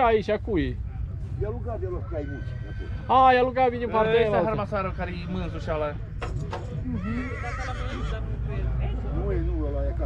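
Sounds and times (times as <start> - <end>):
horse neighing: 2.0 - 3.3, 6.8 - 8.3.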